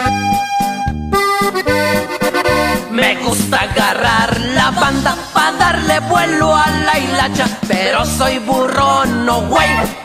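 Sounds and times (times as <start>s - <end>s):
accordion melody: 0.0s - 10.0s
steady bass beat: 1.1s - 10.0s.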